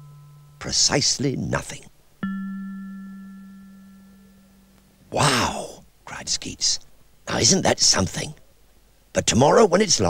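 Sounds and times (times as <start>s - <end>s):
bell chime ringing: 0.0s - 0.9s, 2.2s - 4.8s.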